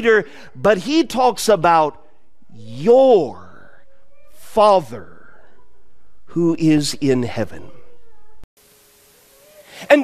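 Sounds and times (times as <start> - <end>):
man speaking: 0.0 - 3.7, 4.4 - 5.3, 6.3 - 7.8
faint hiss: 8.6 - 10.0.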